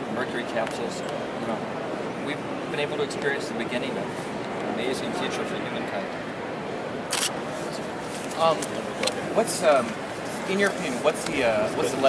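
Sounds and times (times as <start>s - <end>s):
background chatter in echoing hall: 0.0s - 12.0s
camera shutter click: 7.1s - 7.4s.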